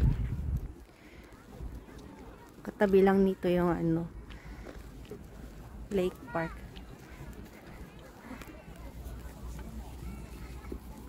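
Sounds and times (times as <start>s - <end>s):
wind rumble on microphone: 0.0s - 0.9s
distant people talking: 0.7s - 3.0s, 4.1s - 11.0s.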